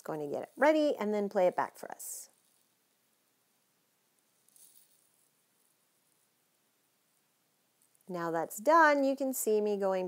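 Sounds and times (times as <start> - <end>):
faint high-pitched rustle: 2.2 - 8.1.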